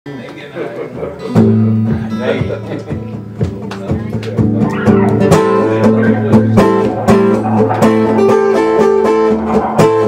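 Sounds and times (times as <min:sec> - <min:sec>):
person talking: 0:04.6 - 0:07.2
guitar chord ringing: 0:04.6 - 0:09.5.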